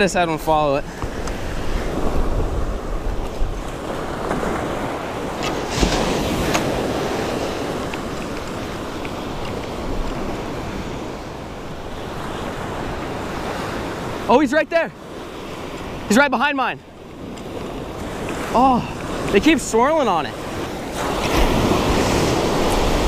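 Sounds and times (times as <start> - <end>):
wind buffeting microphone: 0.0 - 14.3, 16.8 - 23.0
ocean surf on sandy beach: 0.0 - 23.0.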